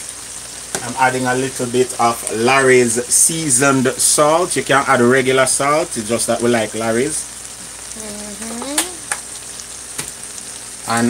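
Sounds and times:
food sizzling in frying pan: 0:00.0 - 0:11.0.

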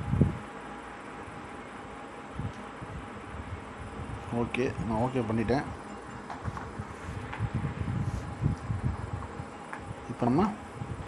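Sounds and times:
faint background hum: 0:00.0 - 0:11.0
man speaking: 0:04.3 - 0:05.8.

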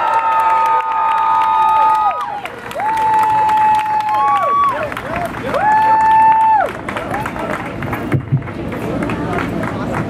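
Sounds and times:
high-pitched held cheers: 0:00.0 - 0:06.8
crowd cheering and clapping: 0:00.0 - 0:10.0.

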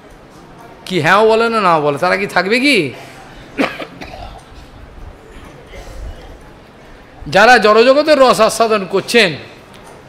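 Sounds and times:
person coughing: 0:03.5 - 0:04.5.

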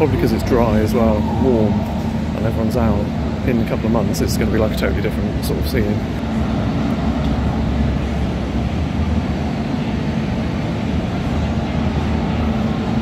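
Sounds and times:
low city rumble: 0:00.0 - 0:13.0.

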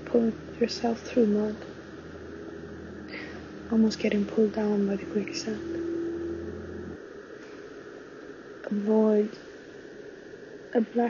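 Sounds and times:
faint held tone: 0:00.0 - 0:08.8
faint hiss: 0:00.0 - 0:11.0
low steady hum: 0:00.0 - 0:11.0.

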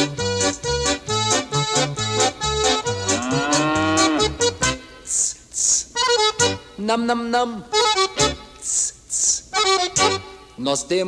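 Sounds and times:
bouncy backing music: 0:00.0 - 0:11.0
cow mooing: 0:02.9 - 0:04.6.

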